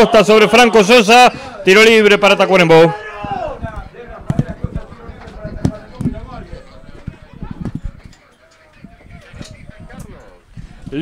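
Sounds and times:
sharp knocks and thumps: 3.2s - 6.3s.

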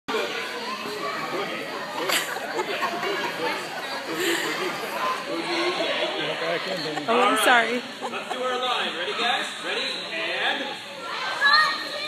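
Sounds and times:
chatter of children and adults: 0.1s - 12.0s.

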